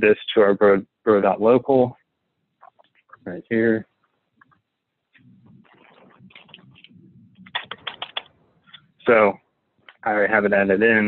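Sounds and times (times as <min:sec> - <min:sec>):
computer keyboard typing: 0:07.4 - 0:08.3.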